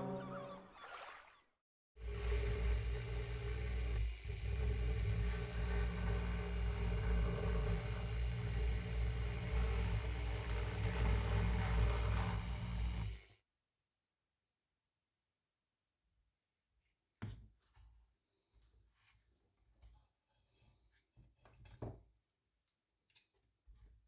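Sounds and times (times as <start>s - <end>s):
rotary tool motor running: 2.0s - 13.3s.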